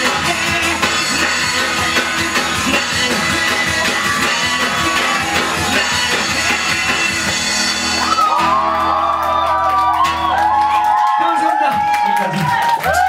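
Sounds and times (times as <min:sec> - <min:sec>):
people whooping and shouting: 0:03.5 - 0:06.9, 0:07.8 - 0:13.0.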